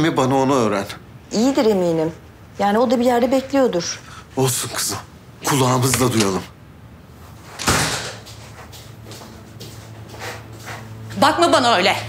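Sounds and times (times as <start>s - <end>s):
low steady hum: 0.0s - 12.0s
footsteps on hard floor: 7.6s - 11.6s.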